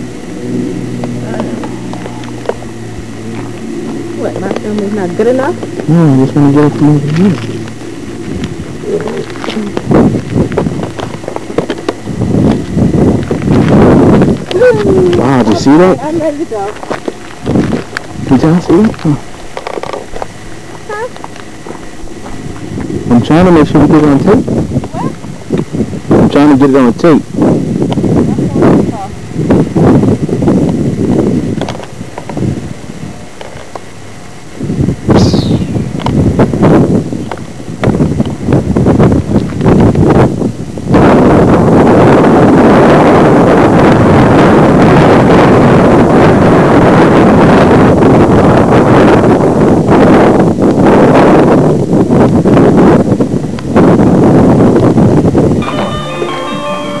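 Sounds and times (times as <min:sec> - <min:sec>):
wind buffeting microphone: 0:00.0 - 0:57.0
high falling whistle: 0:55.6 - 0:57.0
music: 0:55.6 - 0:57.0.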